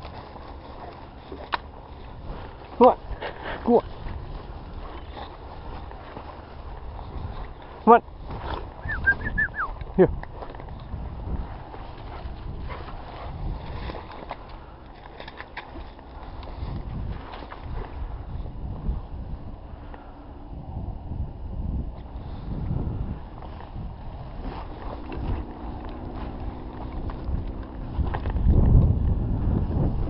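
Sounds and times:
footsteps through rough grass: 0.0 - 19.6, 21.8 - 30.0
wind on microphone: 0.0 - 30.0.

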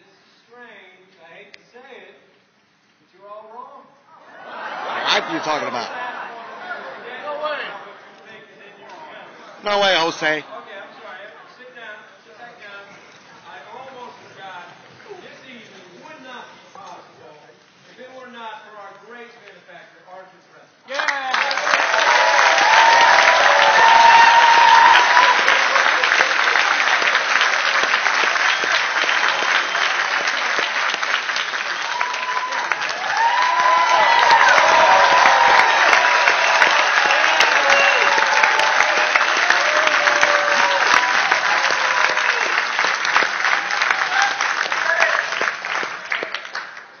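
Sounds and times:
audience applauding and cheering: 4.4 - 5.9, 20.9 - 47.0.

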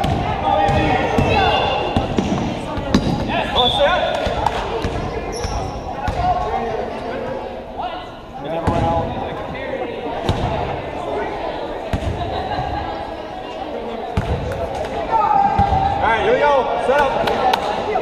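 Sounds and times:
people calling out: 0.1 - 2.2.

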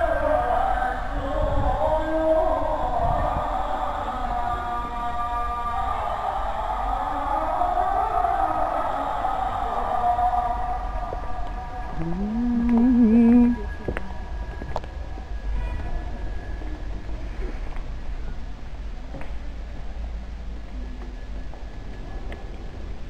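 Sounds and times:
man singing call to prayer: 0.0 - 13.8.

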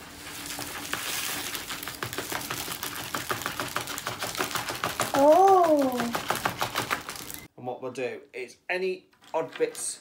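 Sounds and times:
glitter pouring into tub: 0.0 - 7.5.

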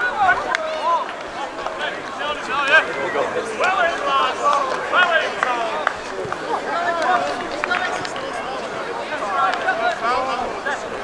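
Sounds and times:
voices calling and shouting: 0.0 - 11.0.

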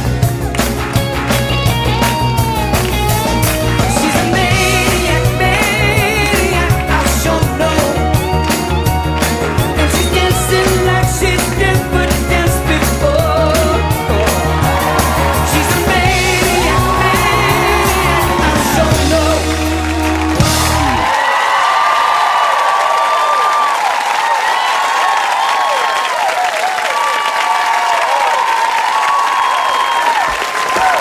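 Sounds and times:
rock and roll music with singer: 0.0 - 21.1
audience cheering and applauding: 0.0 - 31.0.

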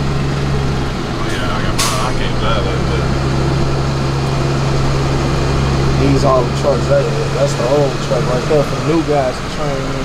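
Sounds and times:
truck engine droning: 0.0 - 10.0.

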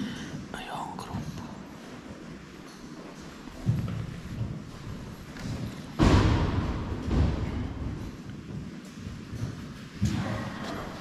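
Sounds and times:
man whispering: 0.0 - 1.8.

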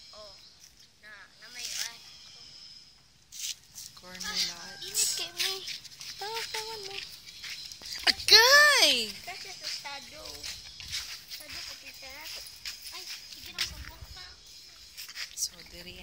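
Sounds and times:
children talking quietly: 3.8 - 16.0.

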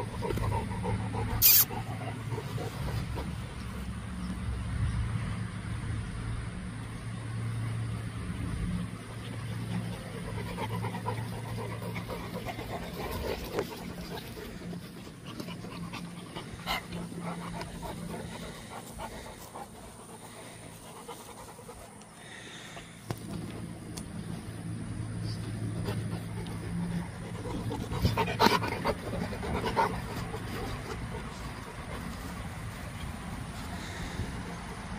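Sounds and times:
dog panting: 0.0 - 4.0, 9.3 - 23.8, 25.3 - 34.9.

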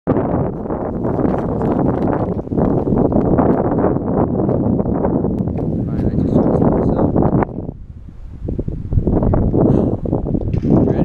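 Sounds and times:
wind buffeting microphone: 0.1 - 11.0.

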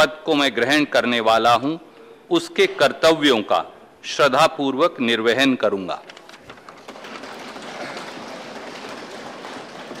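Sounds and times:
crowd applause: 6.9 - 10.0.

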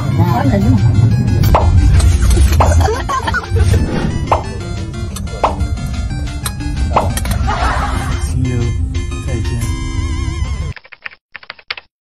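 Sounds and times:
background music: 0.0 - 10.8
keyboard typing clicks: 10.7 - 11.9.

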